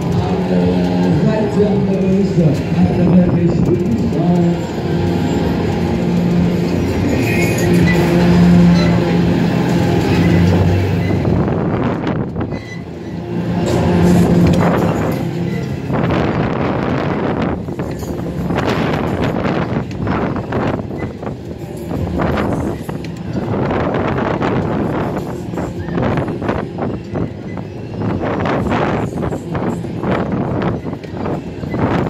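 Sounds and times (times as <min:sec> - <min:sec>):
ride running noise: 0:00.0 - 0:32.0
wind gusting on microphone: 0:00.0 - 0:32.0.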